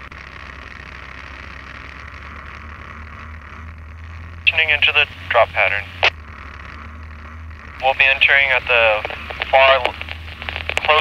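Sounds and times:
drone engine and propeller hum: 0.0 - 11.0.

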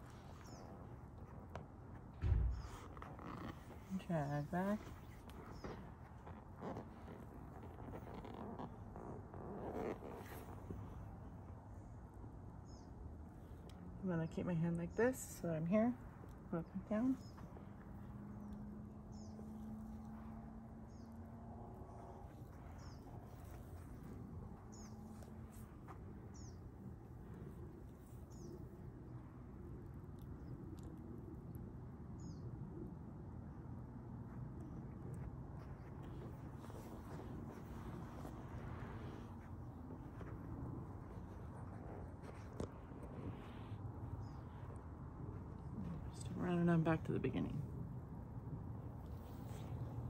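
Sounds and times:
bird chirping: 17.0 - 20.1, 24.6 - 25.4, 26.3 - 26.7.

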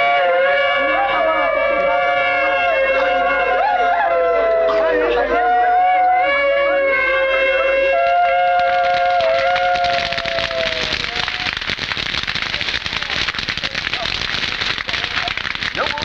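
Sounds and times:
horn blast sagging in pitch: 0.0 - 10.8
bonfire crackling and popping: 8.5 - 16.0.

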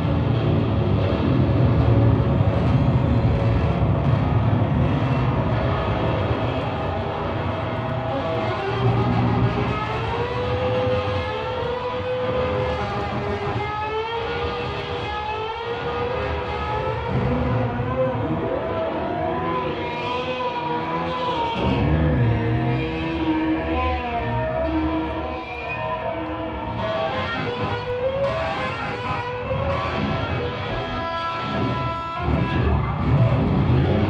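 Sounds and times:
live rock band music: 0.0 - 34.0
siren-like gliding lead line: 3.7 - 34.0.

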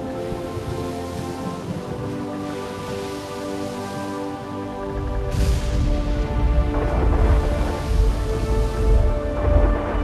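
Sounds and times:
rain-like storm hiss: 0.0 - 10.0
soundtrack music of held chords: 0.0 - 10.0.

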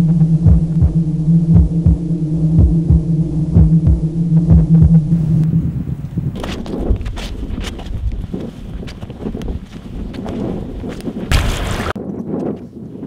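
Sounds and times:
low electronic drone: 0.0 - 6.0
heartbeat-like low thuds: 0.0 - 11.7
wind noise on microphone: 0.0 - 13.0
crackling footsteps: 2.7 - 12.7.

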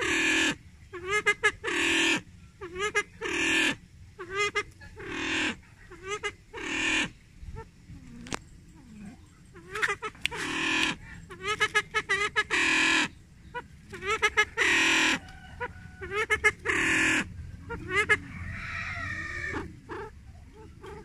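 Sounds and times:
pheasant calling: 0.0 - 21.0.

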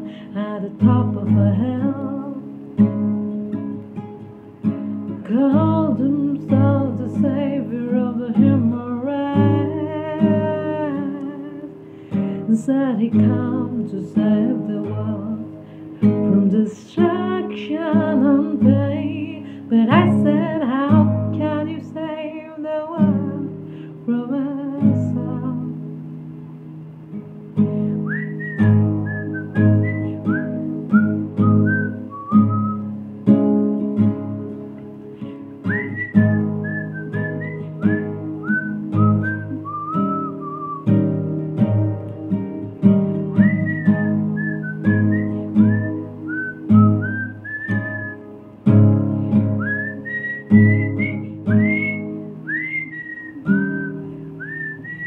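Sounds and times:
strummed acoustic guitar: 0.0 - 55.0
person whistling a melody: 27.9 - 33.0, 35.6 - 42.0, 43.2 - 48.3, 49.4 - 55.0.

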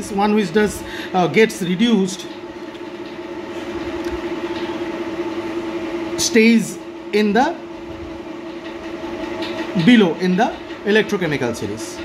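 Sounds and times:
steady mechanical hum: 0.0 - 12.0.

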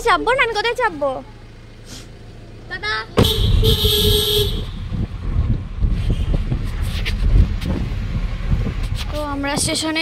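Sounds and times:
road and traffic rumble: 0.0 - 10.0
vehicle horn honking: 3.2 - 5.0.

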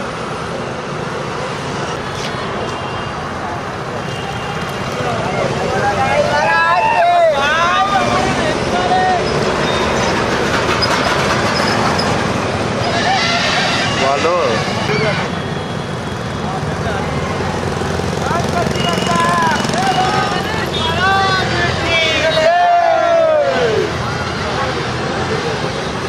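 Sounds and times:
trucks driving past: 0.0 - 22.4
people shouting: 5.3 - 9.3, 19.2 - 24.0
motorbikes driving past: 16.4 - 21.8.

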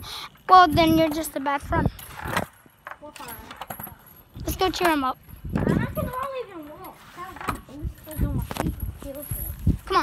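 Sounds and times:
swing chain clinking: 0.5 - 10.0.

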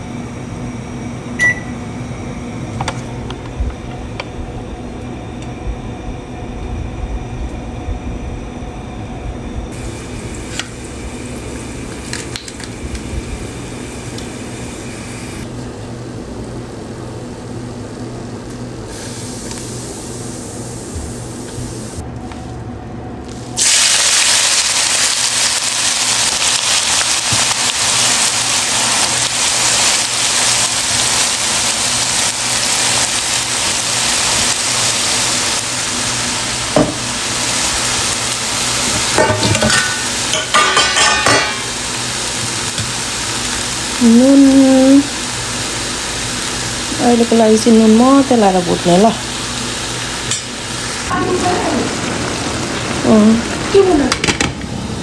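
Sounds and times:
food frying in hot oil: 9.7 - 15.5, 23.2 - 55.0.

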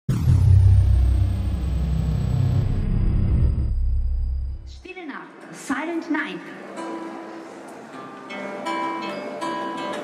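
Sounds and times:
deep rumbling drone: 0.1 - 4.8.

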